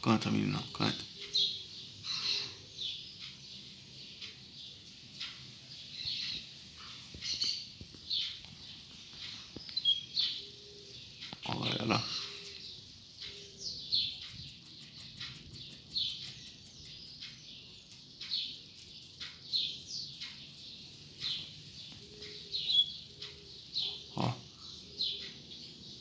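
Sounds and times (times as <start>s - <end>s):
caged bird singing: 0.0s - 26.0s.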